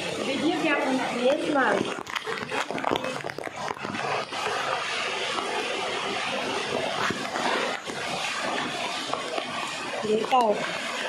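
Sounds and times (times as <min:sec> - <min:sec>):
water rushing over rocks: 0:00.0 - 0:11.0.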